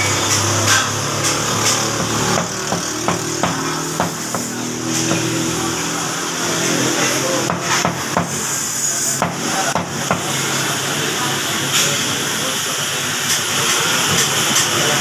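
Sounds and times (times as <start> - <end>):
cleaver knocking on chopping block: 1.9 - 4.5.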